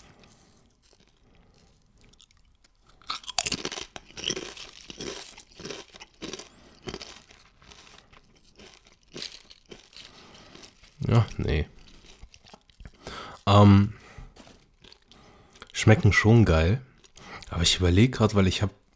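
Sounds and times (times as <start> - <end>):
chips crunching in mouth: 0.0 - 17.5.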